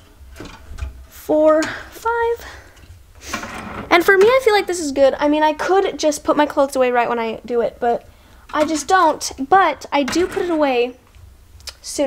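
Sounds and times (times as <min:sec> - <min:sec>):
girl speaking: 0:01.1 - 0:02.6, 0:03.9 - 0:11.0, 0:11.7 - 0:12.0.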